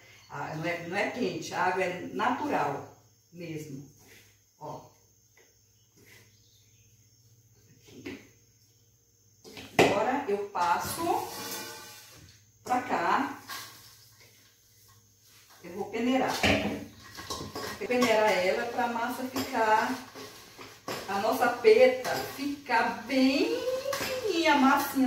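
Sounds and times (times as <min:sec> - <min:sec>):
woman talking: 0:00.3 - 0:02.8, 0:03.4 - 0:03.9, 0:09.8 - 0:11.3, 0:12.7 - 0:13.4, 0:15.6 - 0:16.7, 0:17.8 - 0:20.1, 0:21.0 - 0:25.0
steel bowls knocking and clinking: 0:16.4 - 0:22.5.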